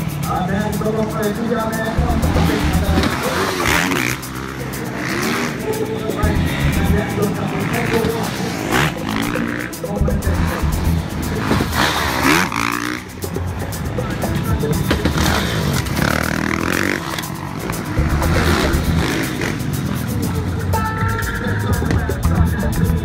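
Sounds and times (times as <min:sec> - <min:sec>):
loud background music: 0:00.0 - 0:23.0
motorcycle engines revving: 0:00.0 - 0:23.0.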